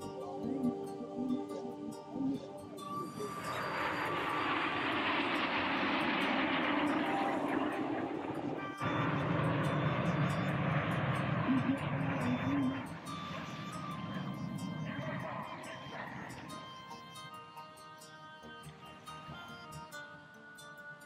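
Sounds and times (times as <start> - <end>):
jet engines flying past: 3.2 - 16.5.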